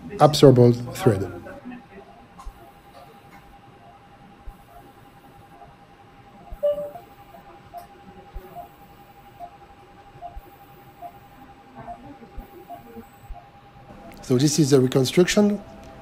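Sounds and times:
constant high hum: 0:00.0 - 0:16.0
patient monitor beeps: 0:01.5 - 0:05.8, 0:06.4 - 0:16.0
loud brief monitor tone: 0:06.5 - 0:07.5.

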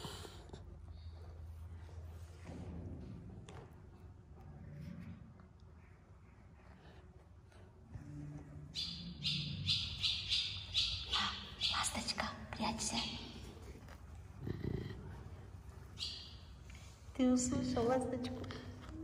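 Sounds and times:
tiger cub chuffing: 0:00.0 - 0:01.5, 0:12.9 - 0:16.9.

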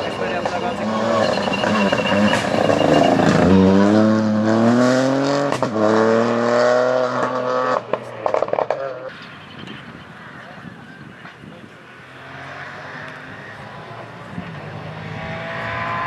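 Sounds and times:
rally car engine revving: 0:00.0 - 0:09.2, 0:11.9 - 0:16.0.

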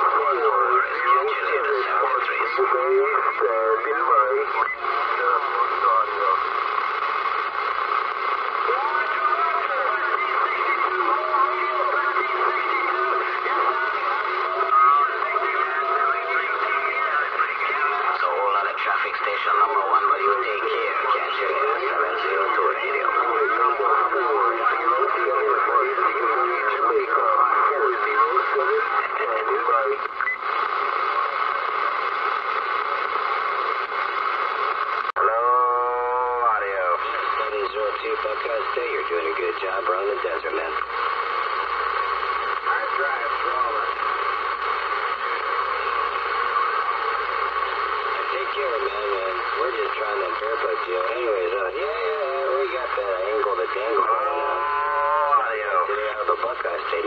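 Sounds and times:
radio band noise: 0:00.0 - 0:57.0
radio voices: 0:00.0 - 0:57.0.

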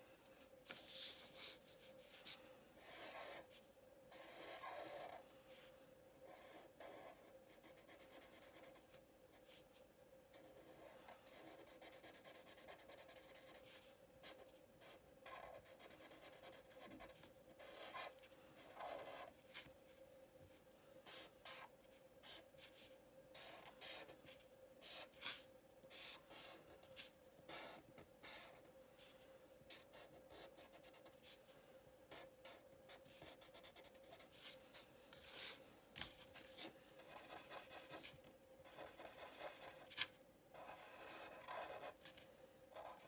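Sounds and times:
faint steady hum: 0:00.0 - 0:43.0
marker scratching on paper: 0:00.7 - 0:05.2, 0:06.2 - 0:09.6, 0:10.4 - 0:19.7, 0:21.1 - 0:28.7, 0:32.1 - 0:34.6, 0:35.2 - 0:42.1, 0:42.8 - 0:43.0.

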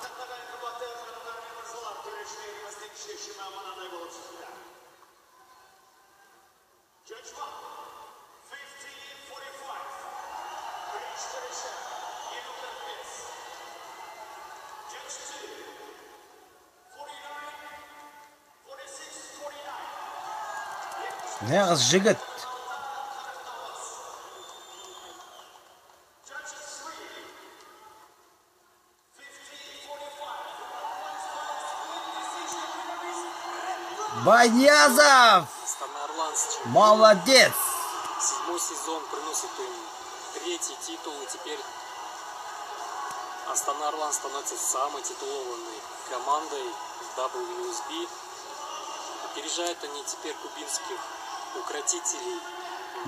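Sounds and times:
crowd noise: 0:00.0 - 0:17.0, 0:18.6 - 0:53.0
announcer over public address: 0:21.4 - 0:22.2, 0:34.1 - 0:35.5, 0:36.6 - 0:37.9
man announcing over public address: 0:21.4 - 0:23.7, 0:33.4 - 0:38.0.

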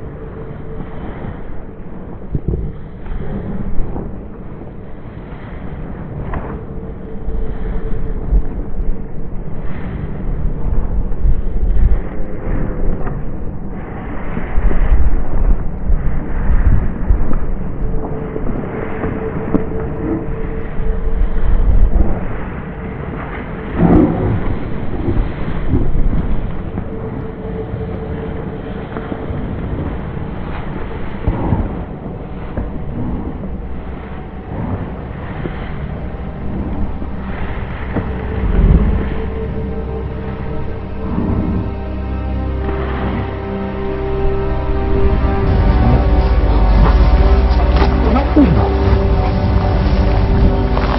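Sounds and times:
wind buffeting microphone: 0:00.0 - 0:41.8.

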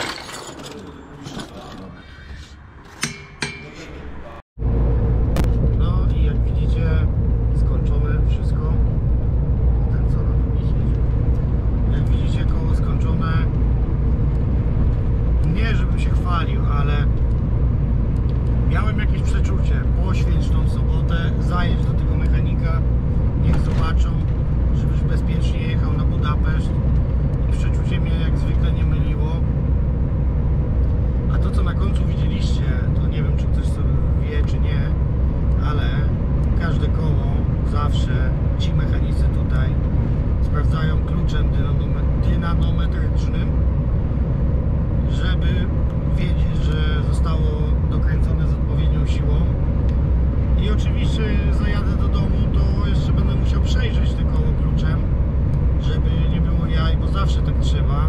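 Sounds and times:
lorry engine rumble: 0:00.0 - 0:58.0
road noise inside cab: 0:00.0 - 0:58.0.

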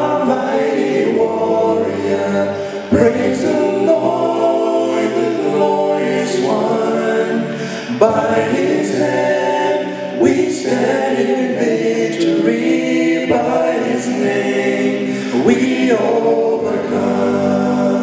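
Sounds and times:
male quartet singing in harmony: 0:00.0 - 0:18.0.

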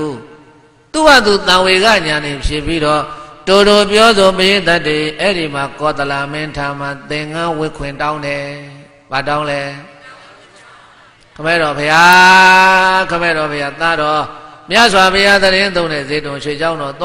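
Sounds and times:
person chanting through microphone: 0:01.8 - 0:16.2.

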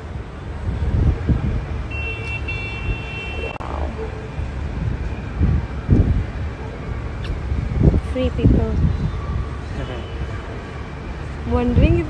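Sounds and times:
distant city traffic hum: 0:00.0 - 0:12.0
wind buffeting microphone: 0:00.0 - 0:12.0
distant high horn: 0:01.9 - 0:03.8, 0:09.7 - 0:10.8.

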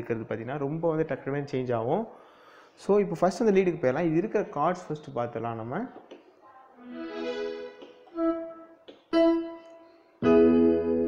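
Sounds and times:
electronic keyboard chords: 0:06.9 - 0:11.0.

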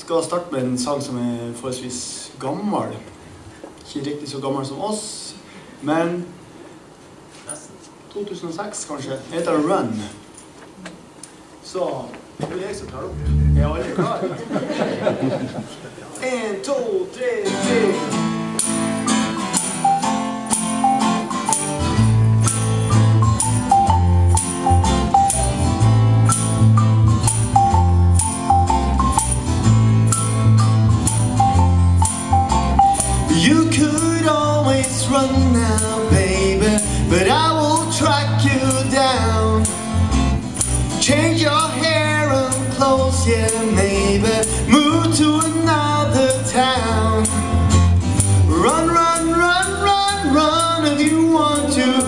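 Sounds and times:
bass guitar: 0:12.8 - 0:14.0, 0:20.1 - 0:52.0
guitar chords: 0:12.8 - 0:14.0, 0:17.9 - 0:52.0
man singing: 0:13.0 - 0:14.0, 0:33.3 - 0:39.8, 0:41.0 - 0:47.5, 0:48.5 - 0:52.0
percussion hits: 0:18.6 - 0:33.3.

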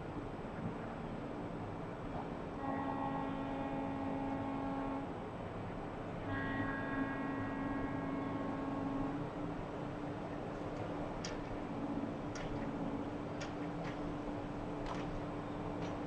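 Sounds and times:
horn blasts: 0:02.6 - 0:05.1.

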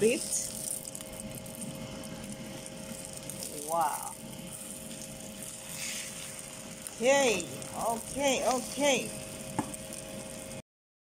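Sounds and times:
omelette sizzling in a pan: 0:00.0 - 0:10.6.

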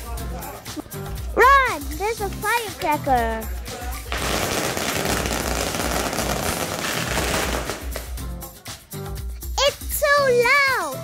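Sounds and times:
firecrackers crackling: 0:04.1 - 0:08.3.

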